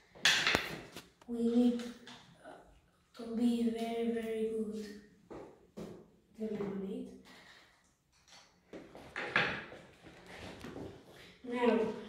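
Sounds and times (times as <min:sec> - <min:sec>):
objects knocking on a table: 0:09.1 - 0:09.8.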